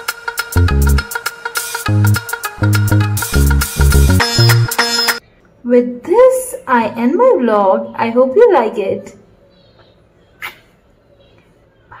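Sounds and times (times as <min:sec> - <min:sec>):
blown kiss smack: 0:10.4 - 0:10.7.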